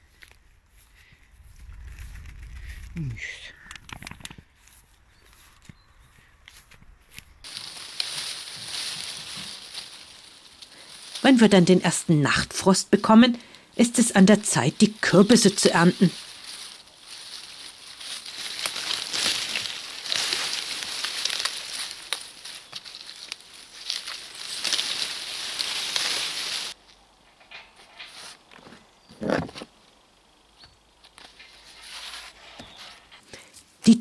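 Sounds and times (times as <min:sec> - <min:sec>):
dry vines and leaves rustling: 0:00.0 - 0:34.0.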